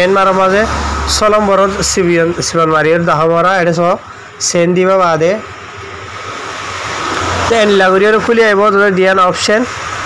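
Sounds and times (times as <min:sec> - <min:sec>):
man speaking: 0:00.0 - 0:05.5, 0:07.4 - 0:09.7
road traffic noise: 0:00.0 - 0:10.0.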